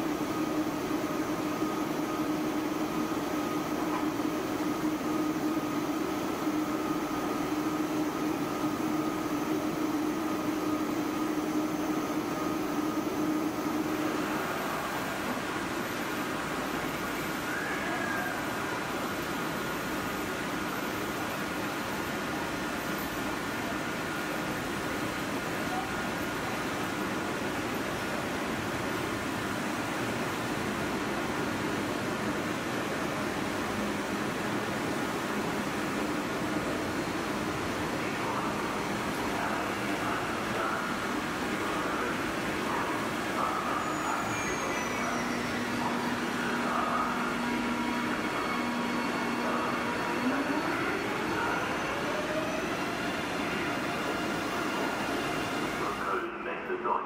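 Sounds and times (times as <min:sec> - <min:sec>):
train wheels rumbling on rail: 0:00.0 - 0:56.1.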